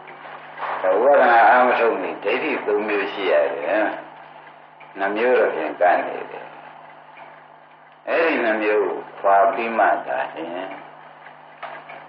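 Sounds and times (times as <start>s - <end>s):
low constant hum: 0.0s - 12.0s
person speaking: 8.1s - 10.9s.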